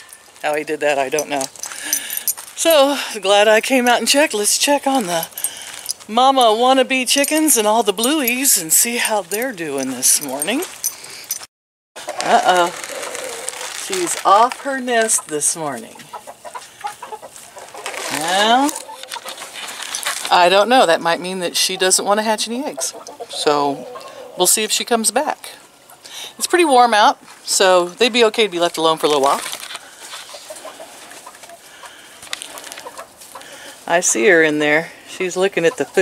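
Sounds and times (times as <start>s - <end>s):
chickens clucking: 12.0s - 13.8s, 14.8s - 24.7s, 25.4s - 26.6s, 29.9s - 36.0s
faint clicks and rustles: 16.5s - 20.5s, 29.1s - 33.6s.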